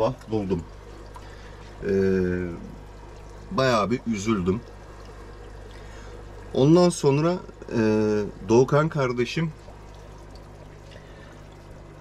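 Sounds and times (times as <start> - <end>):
faint low hum: 0.0 - 12.0
water trickling: 0.0 - 12.0.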